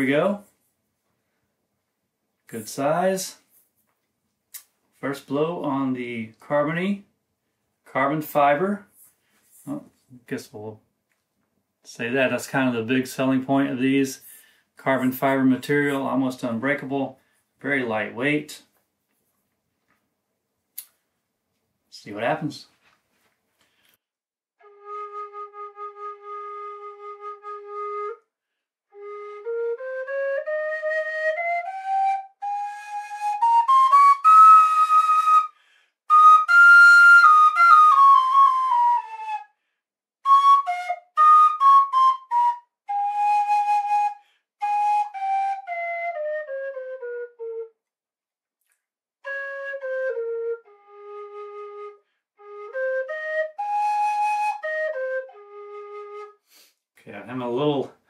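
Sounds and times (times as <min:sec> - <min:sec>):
low whistle playing scales: 0:24.6 - 0:28.3, 0:28.9 - 0:47.8, 0:49.2 - 0:56.4.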